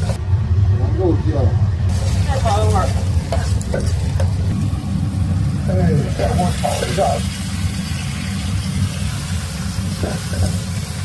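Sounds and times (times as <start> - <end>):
meat stir-frying in a wok: 0.0 - 0.2, 1.9 - 11.0
low rumble: 0.0 - 10.8.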